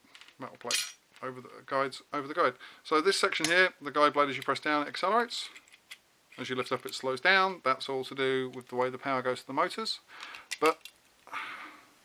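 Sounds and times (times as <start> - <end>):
man speaking: 0.4 - 5.6, 6.4 - 10.8
plastic parts clicking: 10.2 - 11.0.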